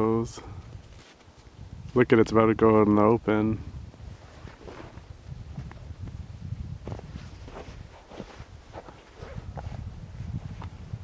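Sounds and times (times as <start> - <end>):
footsteps crunching in snow: 6.8 - 10.8.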